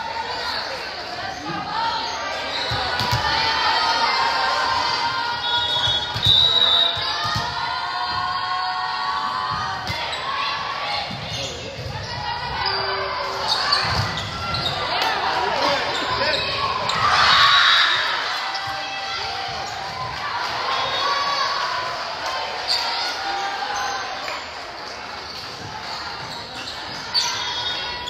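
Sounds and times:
players shouting: 0.0s - 24.8s
volleyball hits: 2.7s - 3.5s, 5.7s - 8.3s.

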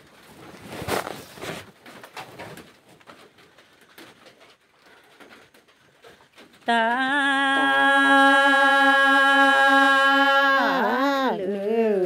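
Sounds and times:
low uneven background noise: 0.0s - 12.0s.

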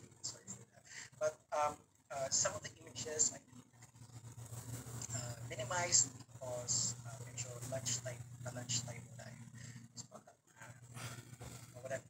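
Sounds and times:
man talking quietly over a call: 11.5s - 12.0s.

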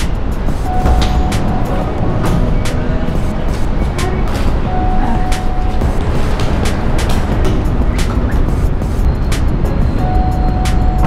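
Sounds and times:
background music with beat: 0.0s - 11.0s
steady low rumble: 0.0s - 11.0s.

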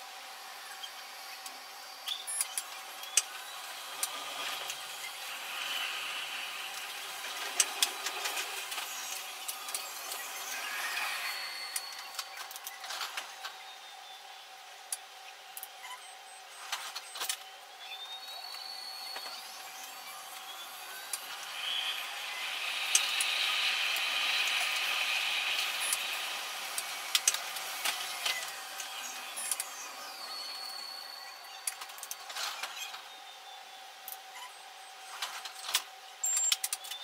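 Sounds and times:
train running noise: 0.0s - 13.7s, 16.6s - 33.1s
metro train motors whining: 0.0s - 14.9s, 16.4s - 32.7s.

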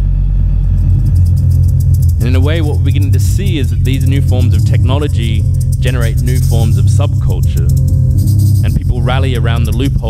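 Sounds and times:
deep electronic bass drone: 0.0s - 10.0s.

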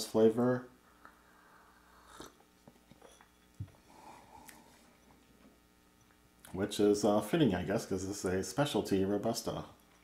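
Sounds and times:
soft sip: 1.0s - 3.3s.

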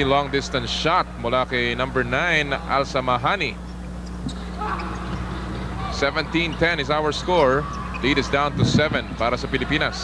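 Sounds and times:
crowd murmur: 0.0s - 10.0s
steady low hum: 0.0s - 10.0s.

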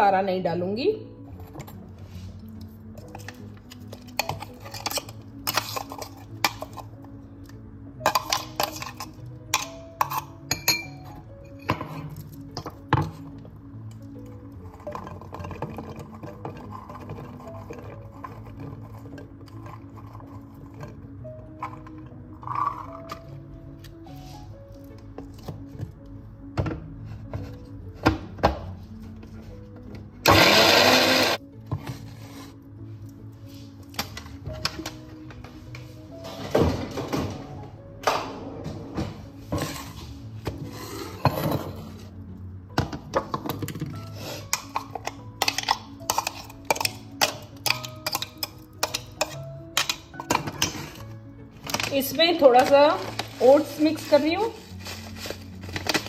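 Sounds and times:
soft background music: 0.0s - 56.0s
steel bowl and jar clinking: 8.0s - 12.0s
mixer grinder running: 30.3s - 31.4s.

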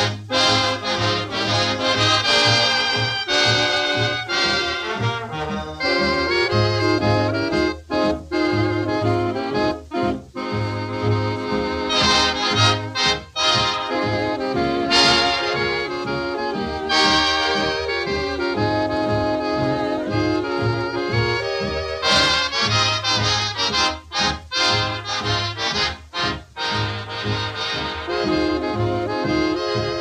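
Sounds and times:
short clipped band chords: 0.0s - 30.0s
steady bass beat: 0.0s - 30.0s
swing dance orchestra: 0.0s - 30.0s.

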